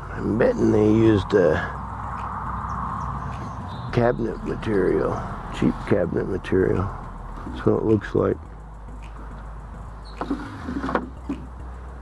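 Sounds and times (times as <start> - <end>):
steady low rumble: 0.0 - 10.2
wooden drawer sliding: 10.2 - 11.4
short scrapes and knocks: 10.2 - 11.5.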